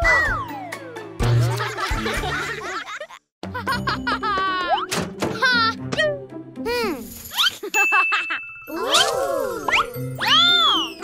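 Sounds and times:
playful cartoon music: 0:00.0 - 0:11.0.

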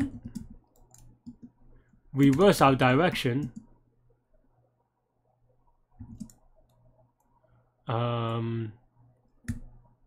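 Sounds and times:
keyboard typing: 0:00.0 - 0:01.6, 0:02.2 - 0:03.7, 0:06.0 - 0:06.8.

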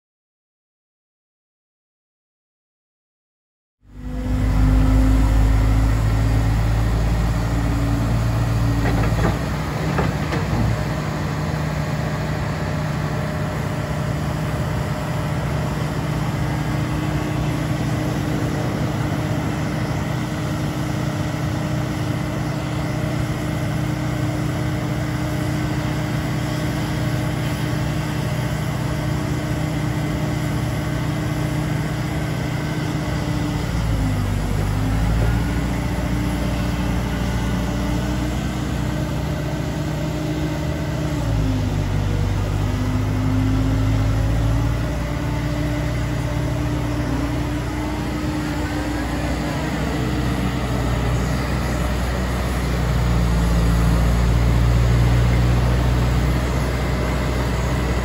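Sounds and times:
diesel engine running: 0:03.8 - 0:58.0
hydraulics working: 0:04.2 - 0:58.0.

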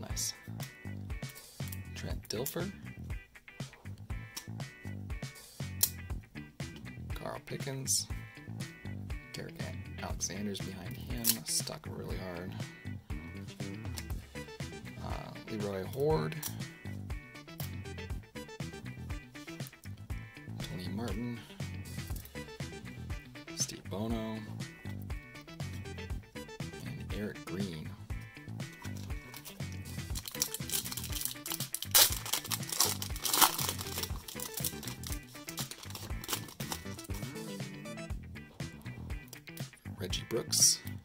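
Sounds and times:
background music: 0:00.0 - 0:41.0
foil wrapper crinkling and tearing: 0:28.8 - 0:37.3.

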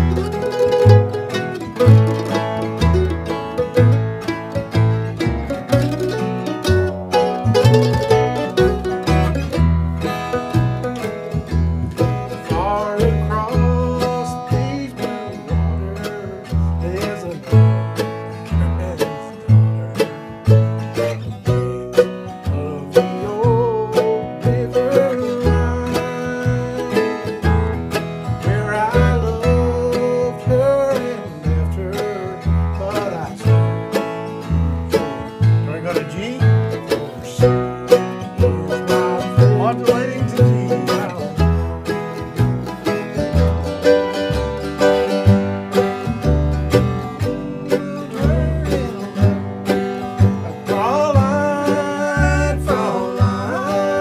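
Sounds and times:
bluegrass band playing: 0:00.0 - 0:54.0
plucked upright bass: 0:00.0 - 0:54.0.

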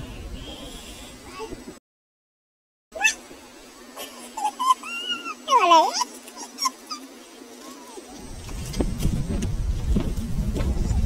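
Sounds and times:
high whimpering cries: 0:04.4 - 0:08.1.

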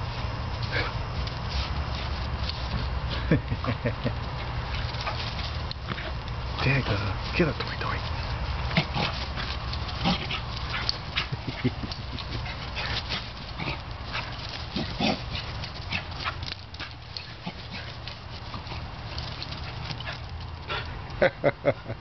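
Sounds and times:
steady low hum: 0:00.0 - 0:22.0
quick rustles and taps: 0:00.4 - 0:21.2
dog vocal noises: 0:07.8 - 0:20.9.

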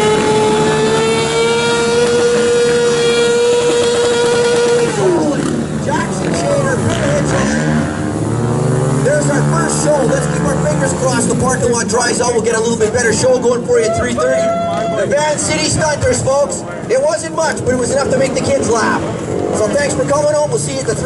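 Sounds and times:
motorcycle throttle blips: 0:00.0 - 0:11.6
motorcycle engine revving: 0:00.0 - 0:13.7, 0:15.1 - 0:21.0.

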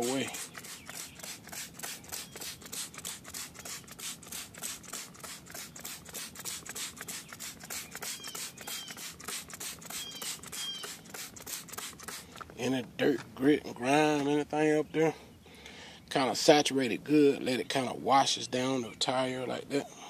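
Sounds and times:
trigger spray bottle squirting: 0:00.0 - 0:12.6.

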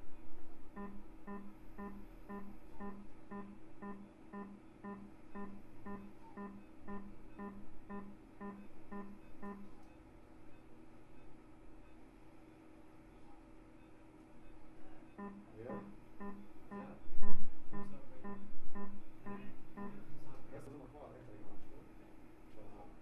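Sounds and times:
faint steady hum: 0:00.0 - 0:23.0
short electronic beeps: 0:00.8 - 0:09.7, 0:15.2 - 0:20.0.

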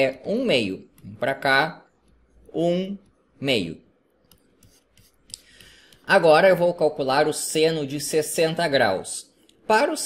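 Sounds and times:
soft intake of breath: 0:05.3 - 0:06.1.

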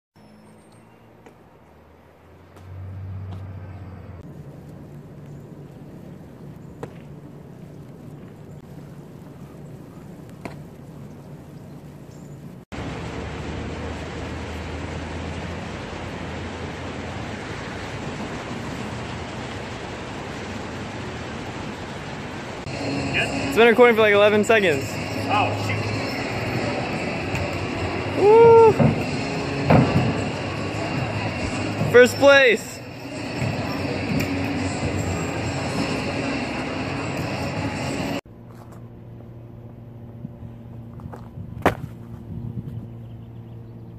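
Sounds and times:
outdoor background noise: 0:00.2 - 0:43.9
even rushing noise: 0:12.8 - 0:38.2.

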